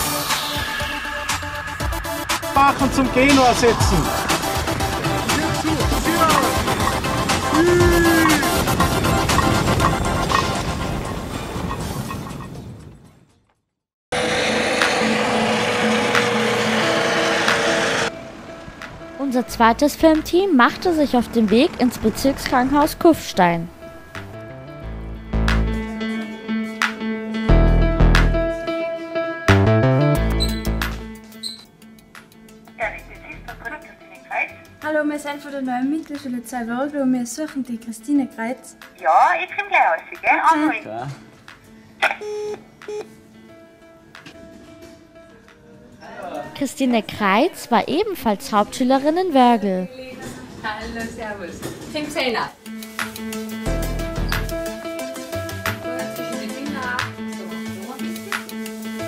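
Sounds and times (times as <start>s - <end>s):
helicopter engine whining: 1.0s - 10.9s, 14.2s - 19.7s
intercom beeps: 42.0s - 43.1s
intercom click: 42.0s - 43.1s.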